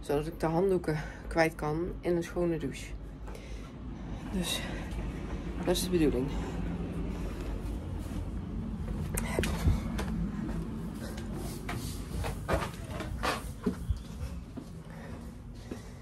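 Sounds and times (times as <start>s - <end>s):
low rumble of handling noise: 2.8s - 16.0s.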